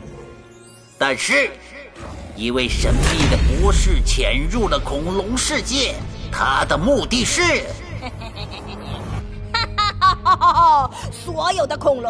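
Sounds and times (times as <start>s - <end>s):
background music: 0.0s - 12.0s
cartoon villain laughing: 7.8s - 11.0s.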